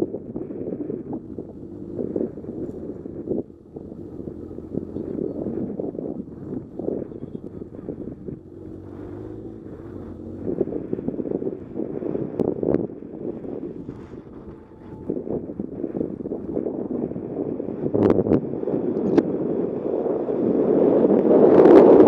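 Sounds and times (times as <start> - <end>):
motorcycle engine running: 0.0 - 22.0
wind buffeting microphone: 0.0 - 22.0.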